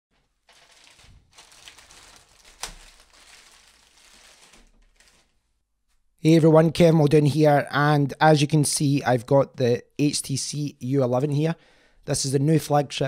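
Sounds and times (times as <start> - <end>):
plastic bag crack: 0.2 - 5.5
plastic mailer bag crinkling: 0.2 - 5.5.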